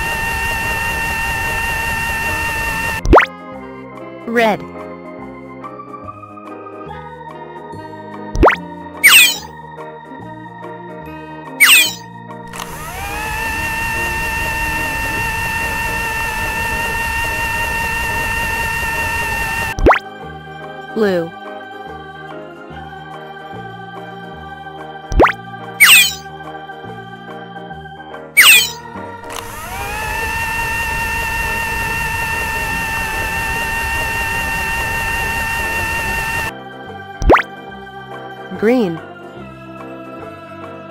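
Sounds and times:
microwave oven humming and whirring: 0.0 - 3.1, 12.6 - 19.8, 29.3 - 36.5.

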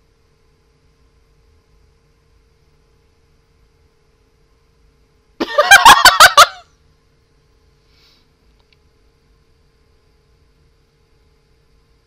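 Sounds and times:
woman laughing: 5.4 - 6.6.

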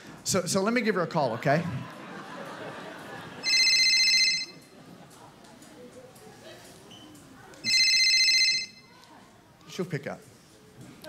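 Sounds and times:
telephone ringing: 3.3 - 4.7, 7.6 - 8.9.

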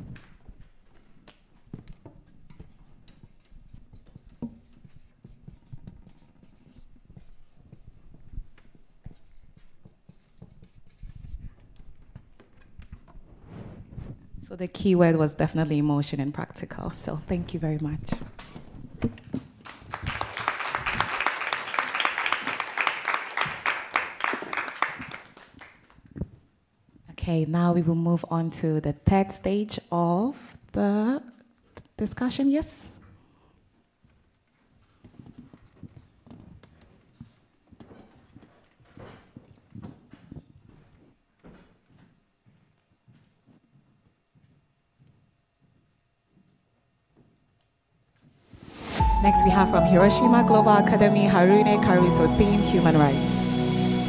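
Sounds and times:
marker pen scratching on whiteboard: 2.6 - 12.1.

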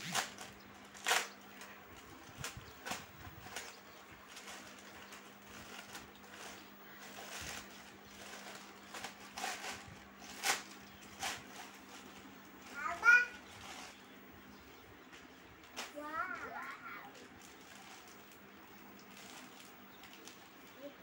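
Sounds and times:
plastic mailer crinkling: 0.0 - 14.2, 15.6 - 21.0.

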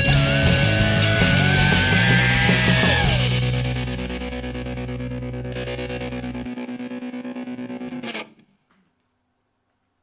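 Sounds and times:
bass guitar: 0.0 - 8.4
distorted electric guitar chord: 0.0 - 8.4.

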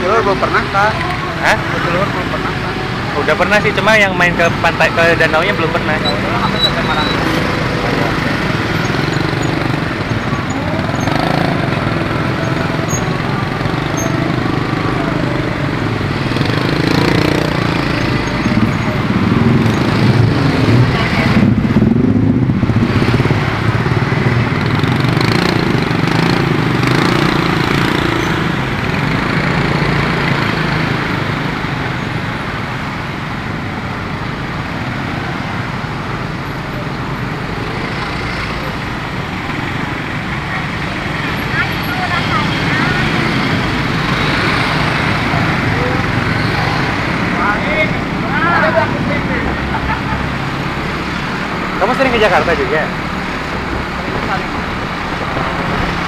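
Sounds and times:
street traffic: 0.0 - 56.0
motorcycle engine running: 5.2 - 31.5.

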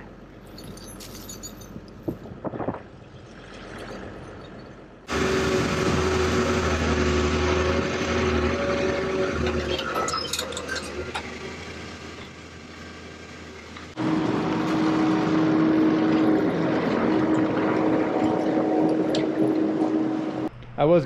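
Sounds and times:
excavator diesel engine running: 4.0 - 21.0.

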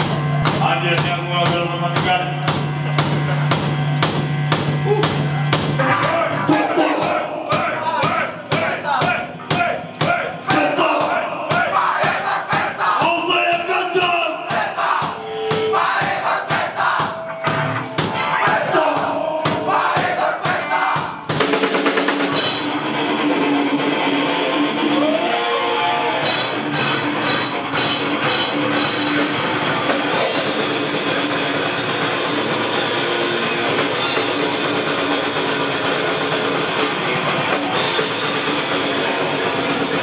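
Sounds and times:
heavy punk band playing: 0.0 - 40.0
shouted screamed vocals: 24.8 - 26.2.

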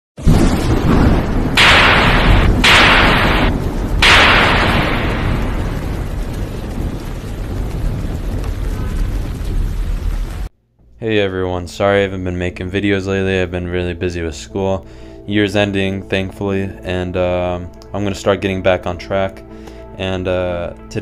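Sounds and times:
deep rumble: 0.3 - 10.5
loud bursts of hissing noise: 1.6 - 6.2.

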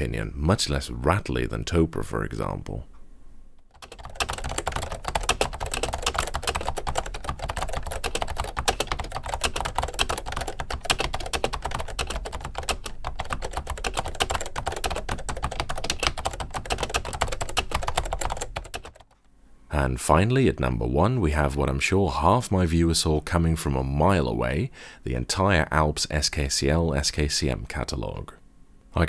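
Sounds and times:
fast typing on a keyboard: 3.7 - 19.2.

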